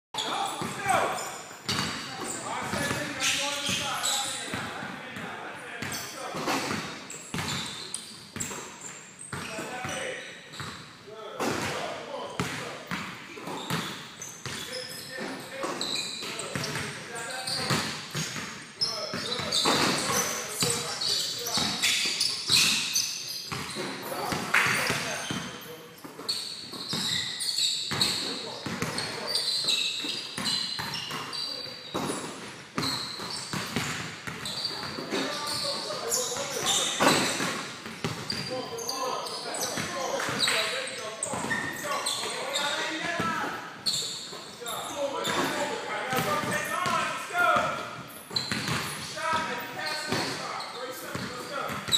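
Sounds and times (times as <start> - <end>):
basketballs bouncing on wooden floor: 1.6 - 4.7, 5.8 - 11.8, 12.4 - 22.8, 23.5 - 25.5, 26.2 - 27.3, 27.9 - 38.5, 39.6 - 40.6, 45.2 - 49.4, 51.1 - 51.9.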